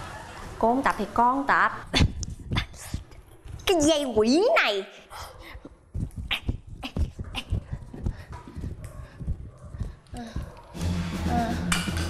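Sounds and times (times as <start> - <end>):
person grunting and panting: 6.3 - 10.6.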